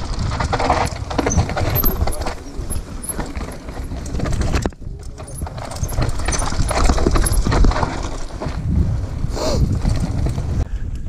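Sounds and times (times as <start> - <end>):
bike rattling and knocking: 0.0 - 10.7
bike tyres crunching over stones: 0.0 - 10.7.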